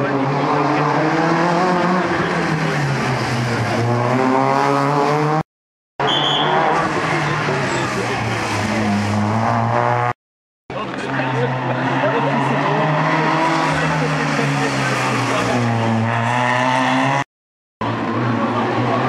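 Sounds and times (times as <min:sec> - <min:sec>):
rally cars cornering: 0:00.0 - 0:05.4, 0:06.0 - 0:10.2, 0:10.8 - 0:19.0.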